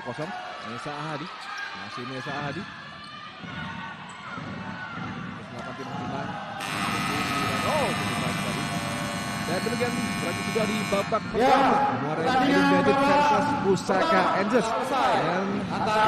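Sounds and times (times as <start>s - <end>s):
crowd noise and voices: 0.0s - 16.0s
timing buzzer blast: 6.6s - 11.3s.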